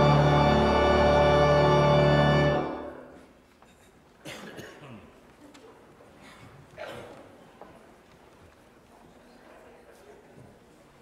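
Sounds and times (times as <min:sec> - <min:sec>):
pipe organ chord: 0:00.0 - 0:03.2
person coughing: 0:03.8 - 0:05.1.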